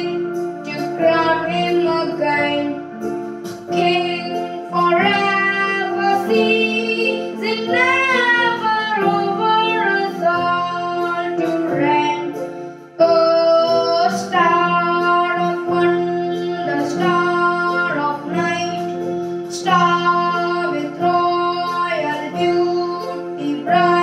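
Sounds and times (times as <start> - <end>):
electronic keyboard chords: 0.0 - 24.0
child singing a carol: 3.7 - 12.4, 13.0 - 18.9, 19.5 - 24.0.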